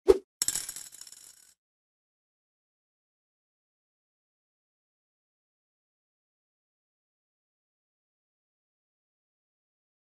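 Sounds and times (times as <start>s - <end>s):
coins clinking: 0.4s - 1.5s
coin thud: 0.4s - 1.6s.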